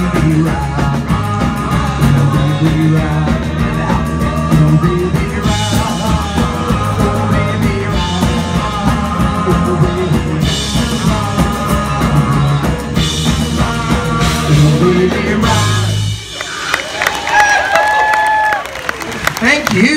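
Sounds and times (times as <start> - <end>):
drum kit with cymbals: 0.0 - 17.4
bass guitar: 0.0 - 19.9
rock and roll band playing: 0.0 - 19.9.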